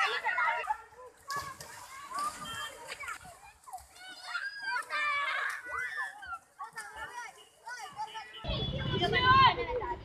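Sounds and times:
children shouting at play: 0.0s - 10.0s.

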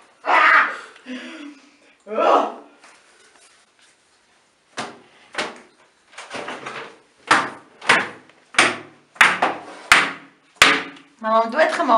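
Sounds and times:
bathtub being struck: 7.2s - 11.0s.

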